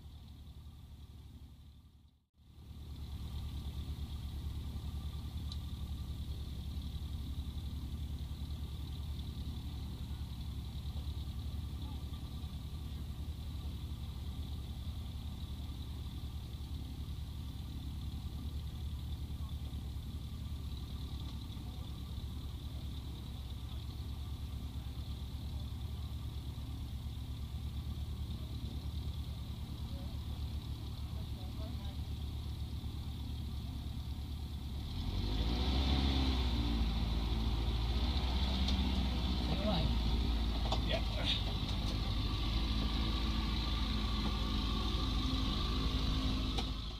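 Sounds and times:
aircraft piston engine idling: 0.0s - 34.7s, 39.0s - 46.9s
voices: 11.6s - 13.2s, 21.1s - 25.7s, 29.6s - 32.4s, 39.3s - 42.2s.

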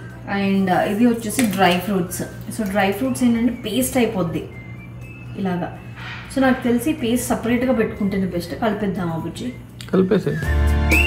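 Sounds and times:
woman talking: 0.2s - 4.6s, 5.4s - 9.6s.

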